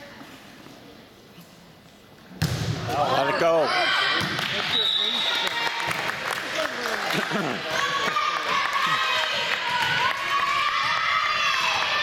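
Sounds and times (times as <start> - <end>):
volleyball serve smack: 2.4 - 2.9.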